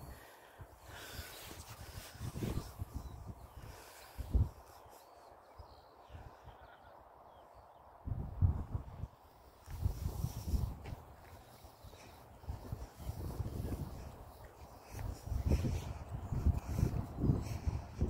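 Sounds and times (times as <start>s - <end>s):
wind gusting on microphone: 0.0s - 7.2s, 7.9s - 18.0s.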